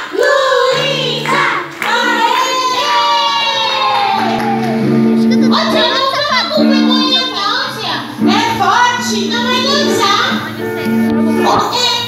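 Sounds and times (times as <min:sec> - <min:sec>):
children singing: 0:00.0 - 0:04.8
musical accompaniment: 0:00.7 - 0:12.0.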